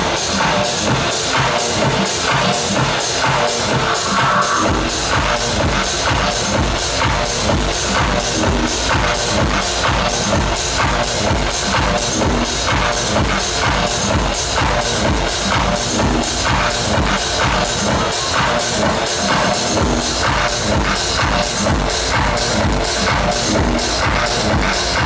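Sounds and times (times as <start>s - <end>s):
techno music over sound system: 0.0s - 25.0s
pounding kick drum: 0.9s - 18.1s.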